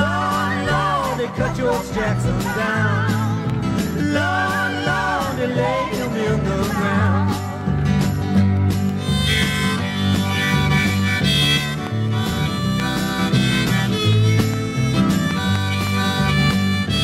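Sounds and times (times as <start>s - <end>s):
bass guitar: 0.0s - 17.0s
rhythm guitar: 0.0s - 17.0s
harmonica melody: 8.8s - 17.0s.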